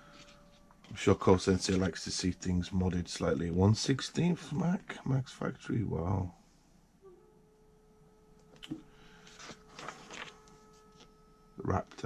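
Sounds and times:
faint electronic tone: 0.0 - 12.0
book page turning: 0.1 - 2.0, 9.2 - 11.1.

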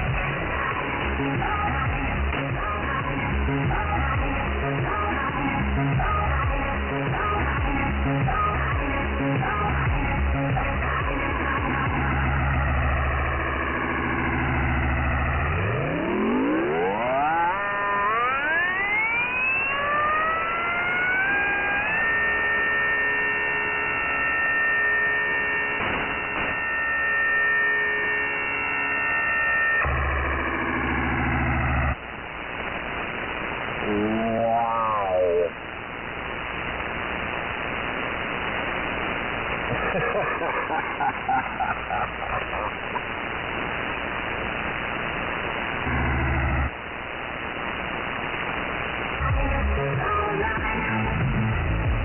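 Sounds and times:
static hiss: 0.0 - 52.0
synthesizer tones: 13.7 - 32.0, 33.8 - 35.6
warbling tone: 33.8 - 35.6.

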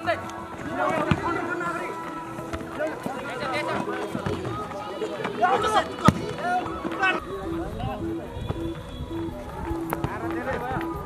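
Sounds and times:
spectators' voices and calls: 0.0 - 11.0.

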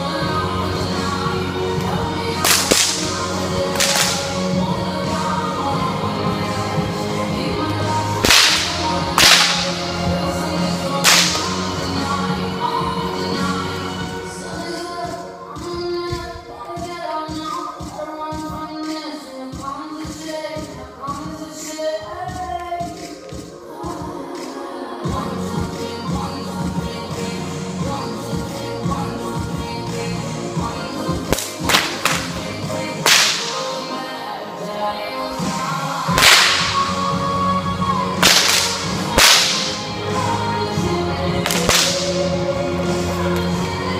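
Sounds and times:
whip cracks with echo: 2.4 - 4.4, 8.2 - 9.8, 11.0 - 11.6, 31.3 - 32.4, 33.0 - 33.7, 36.1 - 36.9, 38.2 - 39.9, 41.4 - 42.2.

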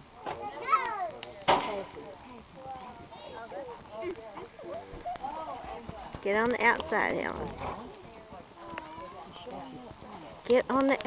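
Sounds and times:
sharp crack or bang: 1.5 - 1.9
people calling: 2.8 - 10.4.

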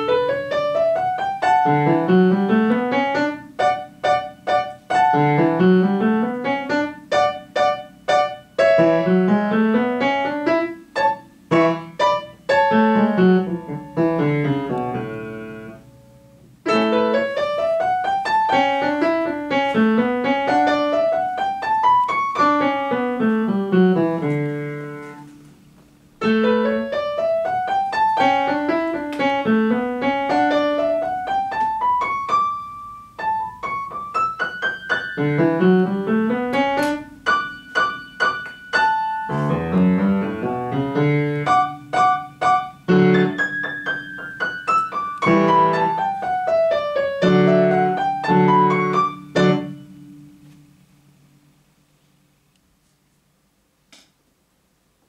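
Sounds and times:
solo upright piano runs: 0.0 - 50.8.

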